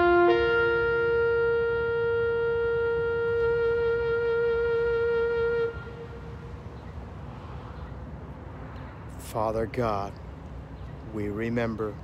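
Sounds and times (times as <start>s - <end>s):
horn playing long notes: 0.0s - 6.8s.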